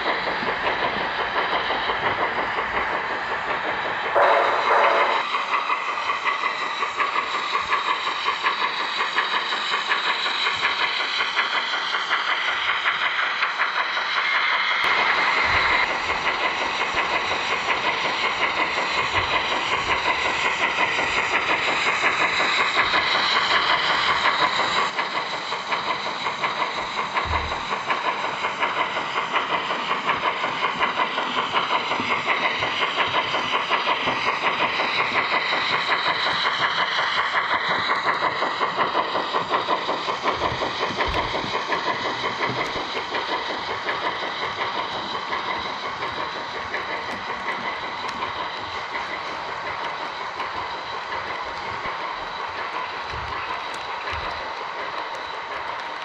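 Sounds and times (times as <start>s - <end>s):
model train high hum: 0.0s - 56.0s
model train wheels clicking: 0.0s - 56.0s.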